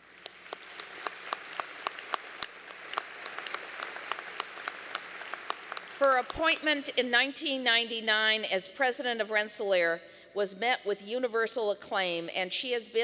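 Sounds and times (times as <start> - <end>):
audience applauding: 0.0 - 6.2.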